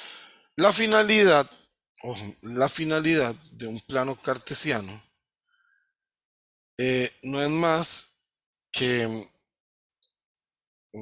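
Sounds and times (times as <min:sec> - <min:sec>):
man speaking: 0:00.6 - 0:05.1, 0:06.8 - 0:08.2, 0:08.8 - 0:09.3.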